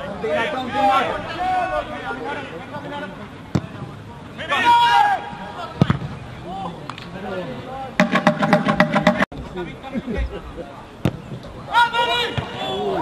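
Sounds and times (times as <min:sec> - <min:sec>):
players and spectators shouting: 0:00.0 - 0:02.8, 0:04.3 - 0:05.8, 0:11.6 - 0:13.0
sharp knocks: 0:08.0 - 0:09.3.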